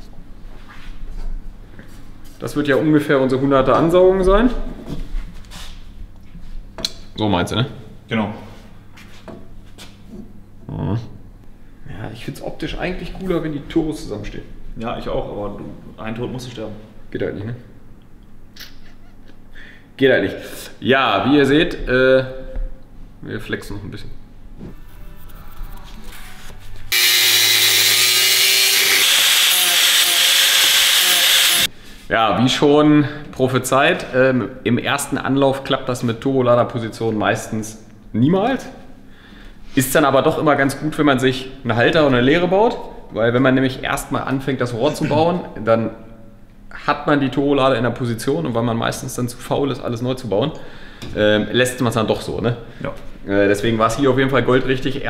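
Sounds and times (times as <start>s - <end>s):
low steady hum: 1.2s - 28.0s
angle grinder grinding steel: 24.9s - 31.7s.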